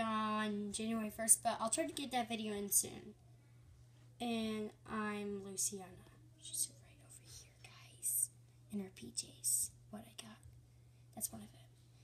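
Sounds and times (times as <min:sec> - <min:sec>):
low steady hum: 0:00.0 - 0:12.0
faint whispering: 0:05.7 - 0:10.4, 0:11.2 - 0:11.7.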